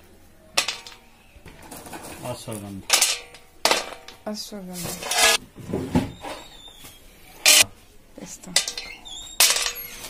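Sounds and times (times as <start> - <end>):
metallic clink on steel bowl: 8.5 - 9.9.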